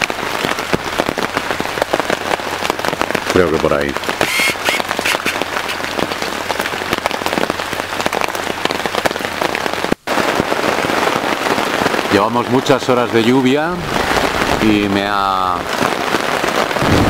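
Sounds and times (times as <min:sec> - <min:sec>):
heavy rain on tent fabric: 0:00.0 - 0:17.0.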